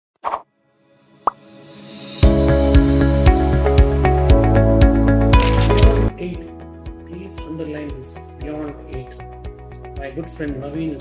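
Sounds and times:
music: 0.5s - 11.0s.

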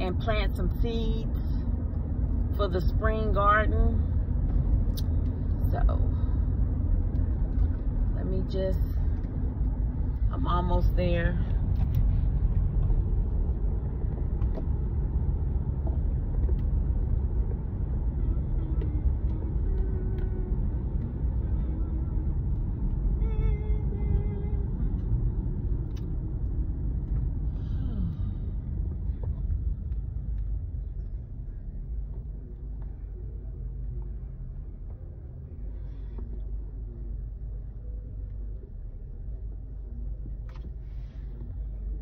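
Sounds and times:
car tyre and engine rumble: 0.0s - 42.0s.

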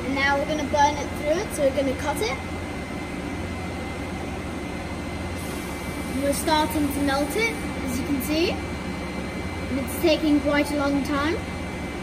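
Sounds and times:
machine hum and fan noise: 0.0s - 12.0s.

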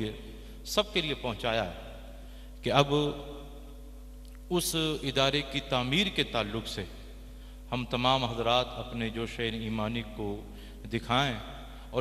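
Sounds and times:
man speaking over loudspeaker: 0.0s - 2.0s, 2.6s - 3.4s, 4.5s - 7.0s, 7.7s - 12.0s
steady low hum: 0.0s - 12.0s.

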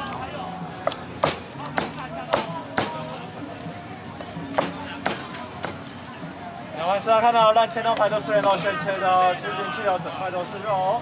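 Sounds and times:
cleaver chopping on wooden board: 0.8s - 3.1s, 4.6s - 5.8s.

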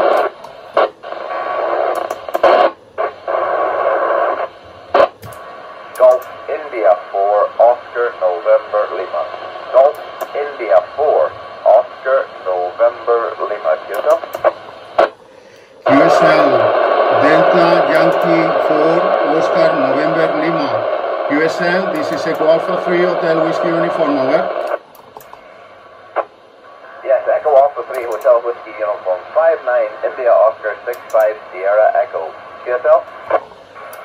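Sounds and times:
radio clicks: 0.0s - 6.4s, 9.1s - 10.8s, 13.2s - 15.2s, 15.8s - 19.2s, 21.9s - 22.8s, 23.9s - 25.4s, 27.8s - 28.4s, 30.8s - 31.4s, 32.8s - 34.0s
radio static hiss: 0.0s - 34.0s
voice over radio: 6.0s - 15.1s, 15.8s - 24.8s, 26.8s - 33.4s.

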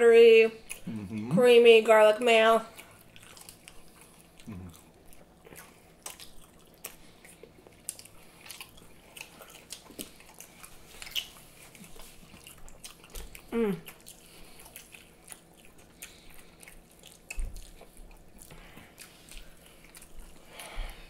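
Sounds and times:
people chewing food: 0.2s - 21.0s
person humming: 0.9s - 1.4s, 4.5s - 4.7s, 13.5s - 13.9s.

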